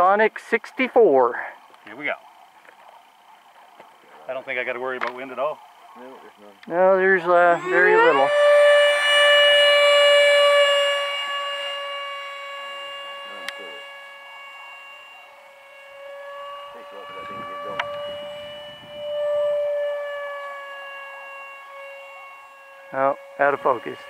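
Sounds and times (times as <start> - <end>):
electric ducted fan whining: 0.0 - 24.0.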